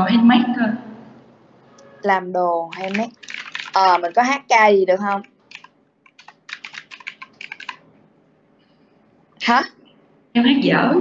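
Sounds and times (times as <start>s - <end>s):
keyboard typing: 2.6s - 7.9s.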